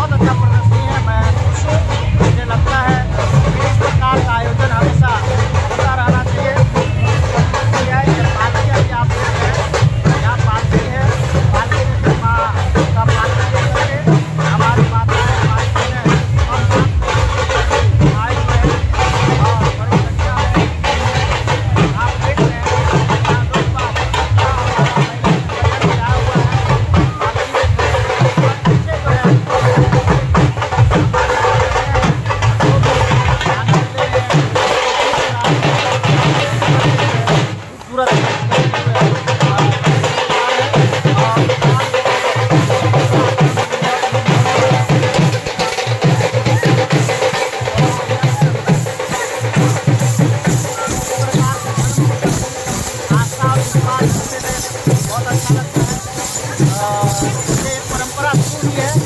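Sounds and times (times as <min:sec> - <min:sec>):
barrel drum beating: 0:00.0 - 0:59.0
voices and crowd noise: 0:00.0 - 0:59.0.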